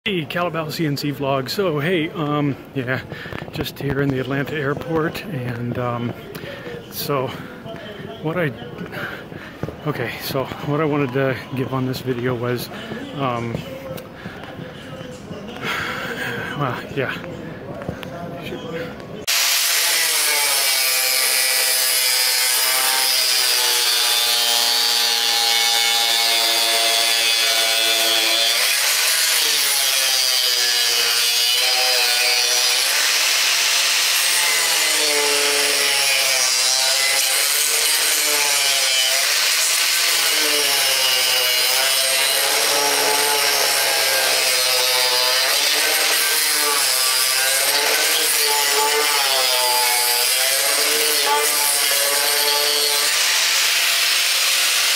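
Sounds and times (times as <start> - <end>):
angle grinder grinding wood: 19.2 - 54.9.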